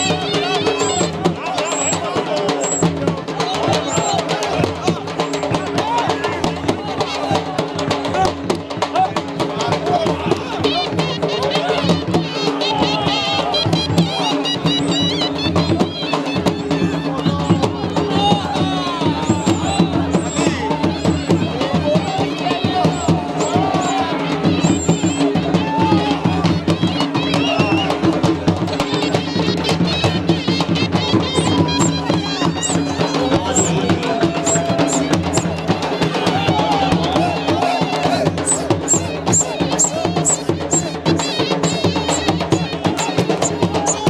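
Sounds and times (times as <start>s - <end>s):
fast continuous drumming: 0.0s - 44.0s
voices: 0.0s - 44.0s
folk music: 8.9s - 44.0s.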